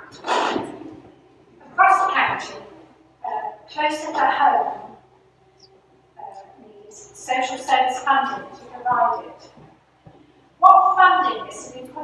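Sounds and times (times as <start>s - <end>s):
rough vocal burst: 0.0s - 0.9s
woman speaking: 1.6s - 5.0s, 6.2s - 9.5s, 10.6s - 12.0s.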